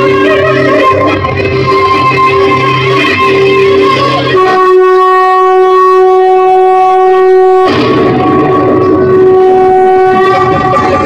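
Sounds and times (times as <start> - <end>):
long-held wind instrument note: 0.0 - 11.0
rough low drone: 0.0 - 11.0.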